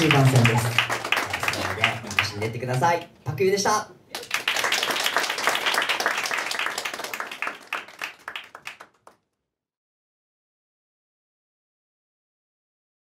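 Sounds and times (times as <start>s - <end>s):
audience applauding: 0.0s - 2.9s, 4.1s - 9.2s.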